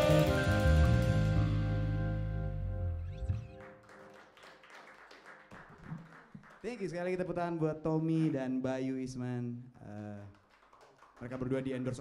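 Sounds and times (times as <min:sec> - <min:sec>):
jazz band chord: 0:00.0 - 0:03.6
audience clapping: 0:03.4 - 0:07.2, 0:09.9 - 0:12.0.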